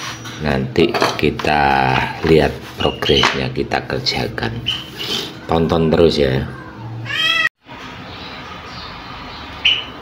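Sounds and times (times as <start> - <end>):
cat meowing: 5.5 - 7.6.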